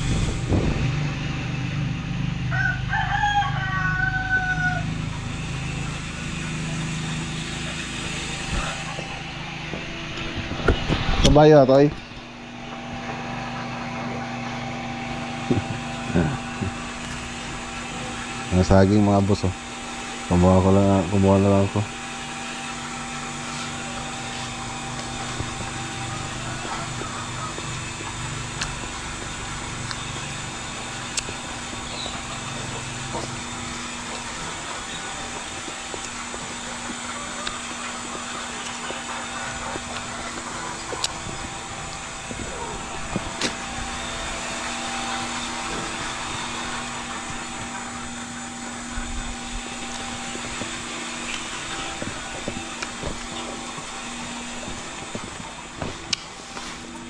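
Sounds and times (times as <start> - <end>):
steady mechanical hum: 0.0 - 57.0.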